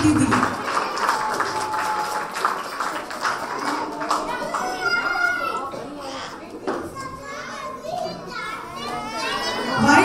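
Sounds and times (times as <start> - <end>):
young children talking: 3.2 - 10.0.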